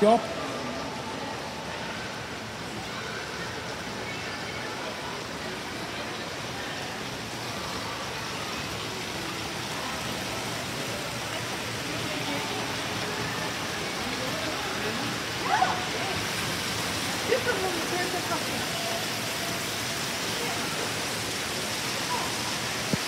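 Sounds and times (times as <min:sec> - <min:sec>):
faint distant voices: 0:00.0 - 0:23.0.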